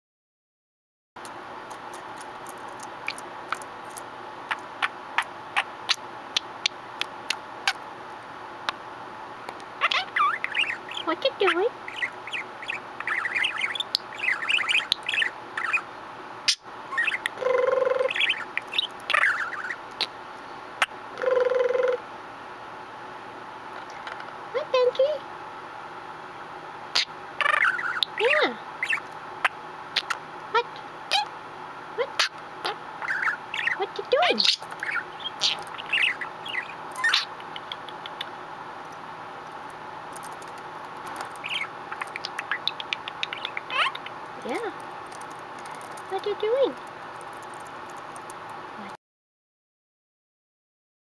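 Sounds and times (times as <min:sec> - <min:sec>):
budgerigar chattering: 0:03.1 - 0:07.8, 0:09.8 - 0:15.9, 0:16.5 - 0:20.2, 0:26.9 - 0:31.3, 0:32.0 - 0:38.4, 0:41.1 - 0:47.7.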